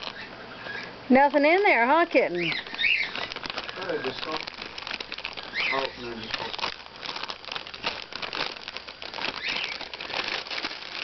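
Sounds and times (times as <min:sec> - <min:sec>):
chip bag crinkling: 0:00.0 - 0:00.3, 0:01.2 - 0:11.0
bird chirp: 0:00.0 - 0:01.0, 0:02.3 - 0:04.4, 0:05.3 - 0:06.5, 0:09.3 - 0:09.9.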